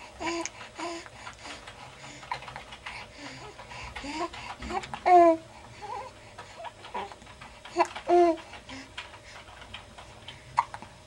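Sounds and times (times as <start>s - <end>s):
quiet clicks and rustles: 0.2s - 11.0s.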